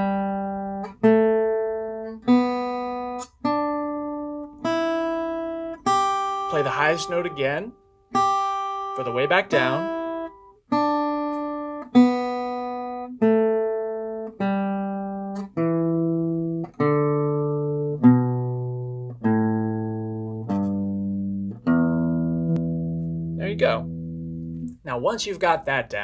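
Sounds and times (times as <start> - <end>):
acoustic guitar picked notes: 0.0 - 26.0.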